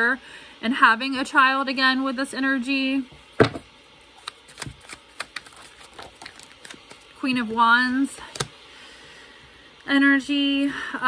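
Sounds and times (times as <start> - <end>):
thump of card deck: 3.4 - 3.6
cards clicking and flicking: 4.2 - 7.2, 7.9 - 8.6.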